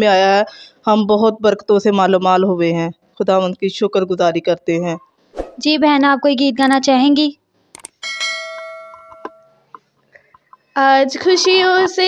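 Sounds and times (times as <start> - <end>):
bell-like chime: 8.0 - 9.6.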